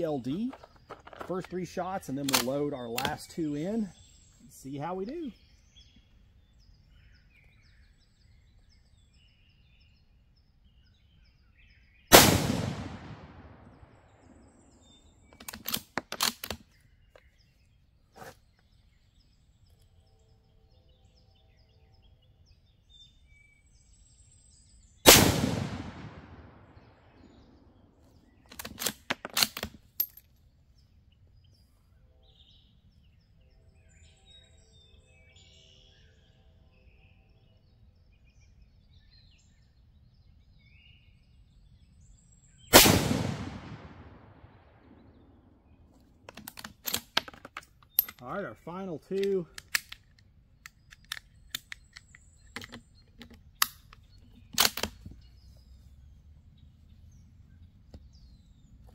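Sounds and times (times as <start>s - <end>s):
rifle bolt metallic clicks: 0.5s - 3.2s, 15.3s - 16.6s, 28.5s - 30.3s, 46.3s - 48.2s, 49.1s - 55.2s
rifle shots echoing: 12.1s - 14.3s, 25.1s - 27.0s, 42.7s - 45.1s.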